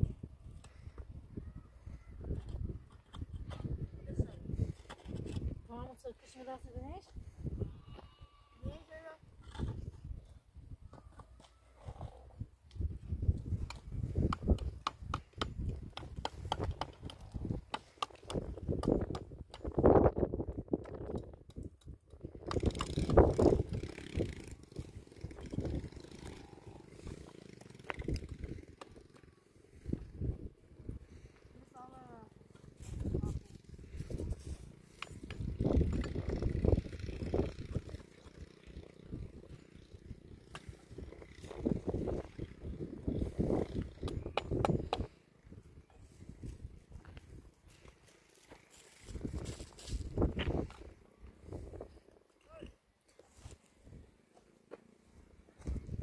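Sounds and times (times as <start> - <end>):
concrete blocks scraping and knocking: 4.5 - 5.6.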